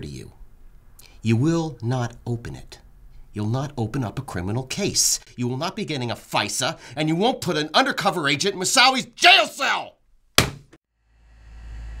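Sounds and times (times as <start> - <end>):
telephone handset slammed down: 10.4 - 10.7.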